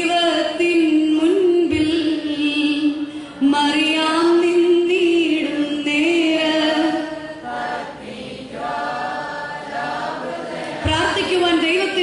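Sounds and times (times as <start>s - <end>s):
voices singing slow song: 6.5s - 10.9s
people speaking: 10.8s - 12.0s.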